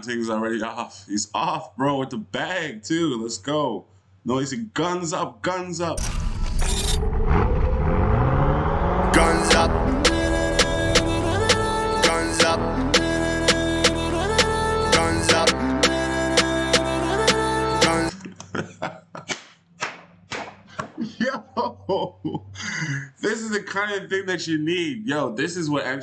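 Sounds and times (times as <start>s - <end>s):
car engine revving: 6.0s - 14.0s
hands clapping: 19.2s - 21.0s.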